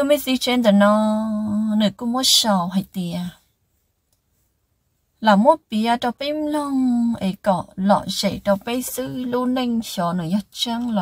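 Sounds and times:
faint click: 4.1 - 4.3
person speaking: 5.2 - 11.0.

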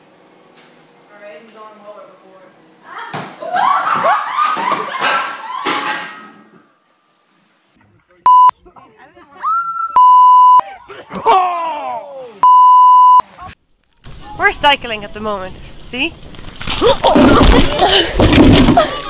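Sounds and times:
censor bleeps: 8.3 - 8.5, 10.0 - 10.6, 12.4 - 13.2.

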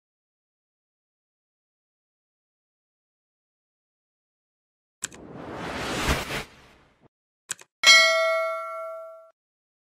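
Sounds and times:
notification bell ding: 7.8 - 9.4.

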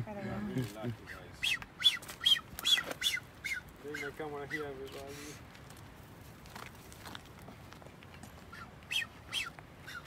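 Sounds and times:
bird whistling: 1.0 - 4.8, 8.5 - 10.0.

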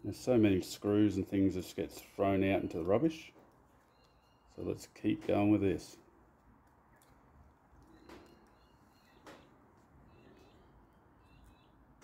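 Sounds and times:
faint high chirps: 3.8 - 4.7, 7.8 - 12.0.

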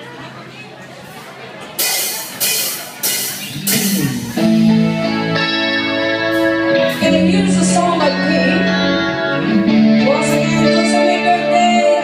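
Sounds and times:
drum and cymbal hits: 1.8 - 5.8
keyboard chords: 2.4 - 12.0
guitar chords: 3.0 - 12.0
amplifier hum: 3.4 - 6.2.

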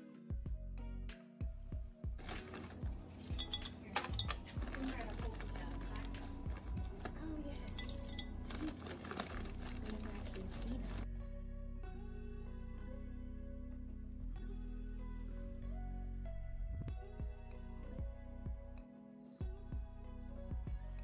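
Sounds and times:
background music: 0.0 - 21.0
candies clattering into glass: 2.2 - 11.0.

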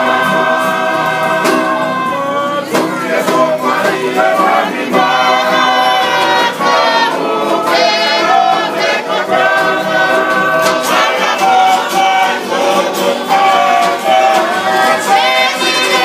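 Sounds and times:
group singing in harmony: 0.0 - 16.0.

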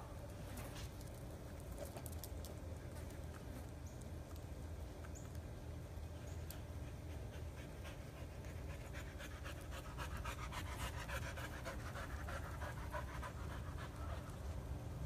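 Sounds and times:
dog panting: 6.6 - 14.6.

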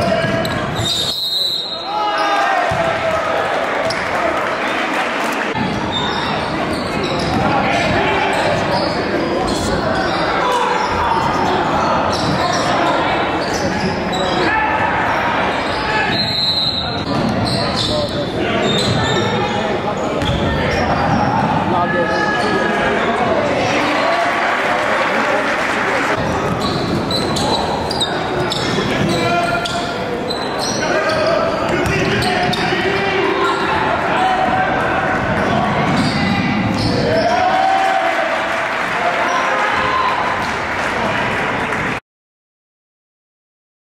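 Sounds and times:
echoing crowd voices: 0.0 - 42.0.

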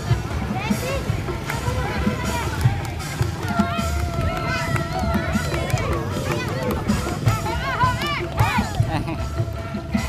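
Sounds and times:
crowd calling out and chattering: 0.0 - 10.0
music playing: 0.0 - 10.0.

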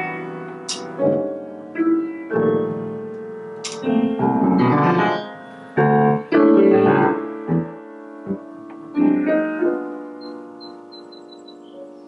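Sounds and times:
upright piano playing chords: 0.0 - 12.0.

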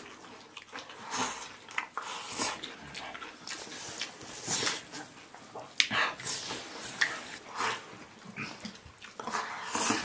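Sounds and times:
chewing: 0.0 - 10.0.

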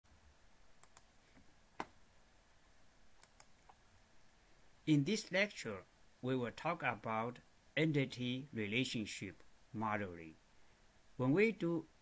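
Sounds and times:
faint computer clicks: 0.8 - 1.1, 3.2 - 3.8.

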